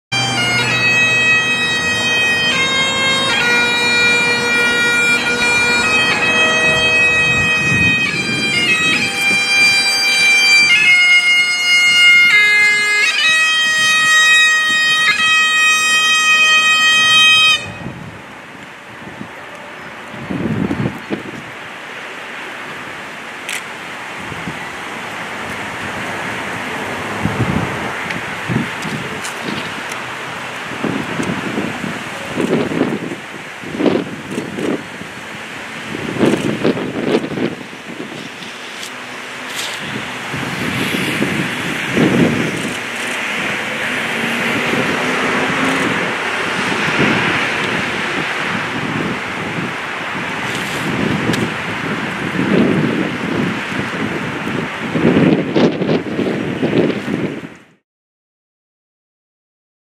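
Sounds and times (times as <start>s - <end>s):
bagpipes playing slow melody: 0.1s - 18.1s, 34.3s - 49.0s
wind hiss on microphone: 17.0s - 57.7s.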